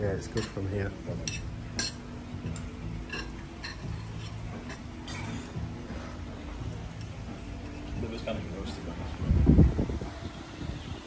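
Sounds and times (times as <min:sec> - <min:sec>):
fork clinking on a plate: 0:01.2 - 0:05.6.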